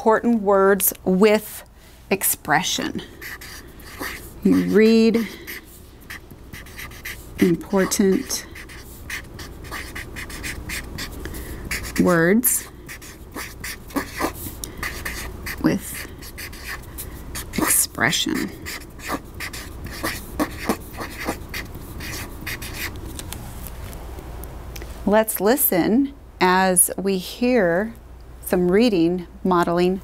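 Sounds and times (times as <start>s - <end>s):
marker writing on paper: 3.0s - 23.2s.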